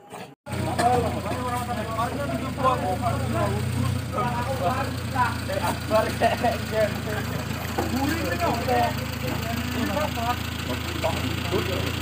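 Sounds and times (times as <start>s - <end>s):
people talking: 0.0s - 12.0s
engine idling: 0.5s - 12.0s.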